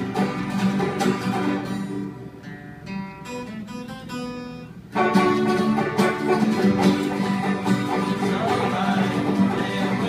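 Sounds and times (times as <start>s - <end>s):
banjo picking: 0.0s - 2.1s, 5.0s - 10.0s
strummed acoustic guitars: 0.0s - 10.0s.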